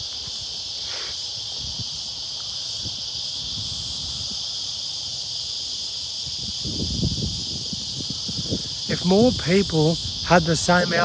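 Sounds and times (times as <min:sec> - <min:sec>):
insects chorus: 0:00.0 - 0:11.0.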